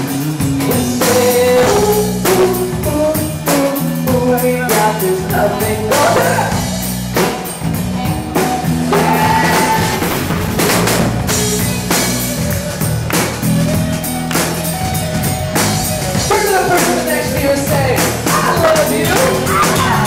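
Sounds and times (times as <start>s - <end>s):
man singing: 0.0s - 6.8s, 16.2s - 20.0s
drum kit beat: 0.0s - 20.0s
electric and acoustic guitars: 0.0s - 20.0s.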